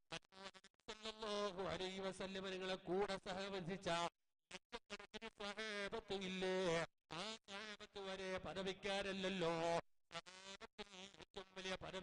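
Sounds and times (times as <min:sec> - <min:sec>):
man chanting religious speech: 0:01.5 - 0:04.1, 0:06.0 - 0:06.9, 0:08.1 - 0:09.8.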